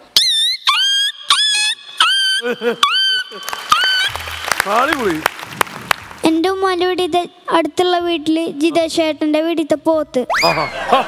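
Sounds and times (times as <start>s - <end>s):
boy making squeaky calls: 0.1s - 4.1s.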